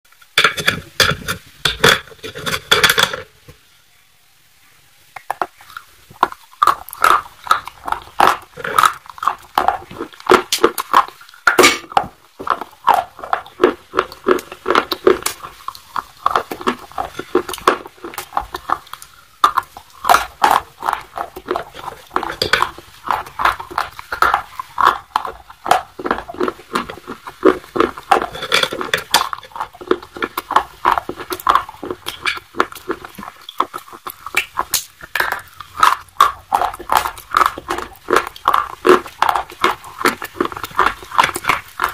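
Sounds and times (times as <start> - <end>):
crunchy chewing: 5.2 - 41.9
wet mouth clicks: 5.2 - 41.9.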